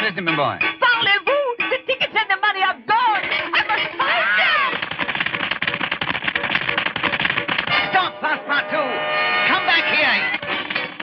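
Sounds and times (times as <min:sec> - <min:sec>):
busy fast-moving music: 0:00.0 - 0:11.0.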